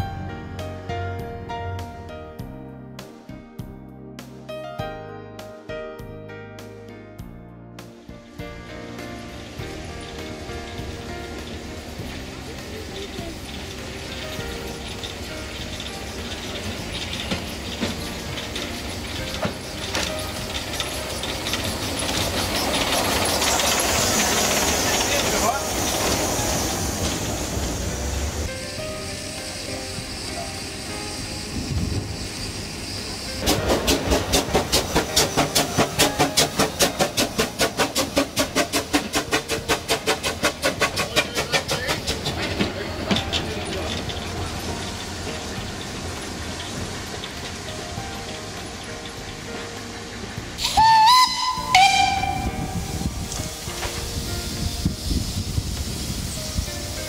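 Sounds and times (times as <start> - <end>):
steam locomotive hissing steam: 8.7 - 57.0
steam venting from drain cocks: 9.2 - 57.0
rapid exhaust chuffs: 29.5 - 47.7
steam whistle blasts: 50.6 - 53.3.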